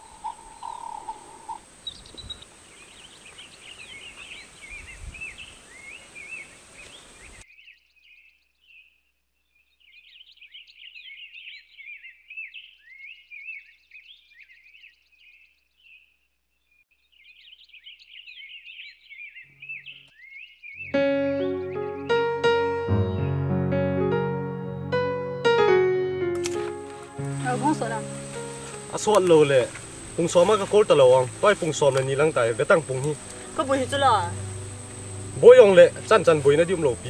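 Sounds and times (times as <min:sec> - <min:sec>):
small birds chirping: 0:00.0 - 0:23.4, 0:27.0 - 0:37.0
steady hiss: 0:26.4 - 0:37.0.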